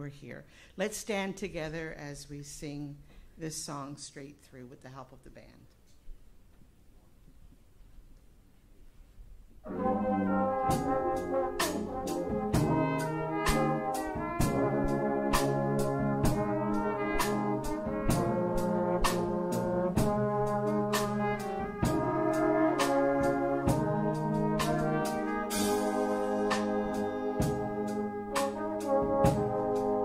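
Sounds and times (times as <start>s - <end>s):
brassy chords: 9.6s - 30.0s
drum beat with cymbal hits: 9.8s - 30.0s.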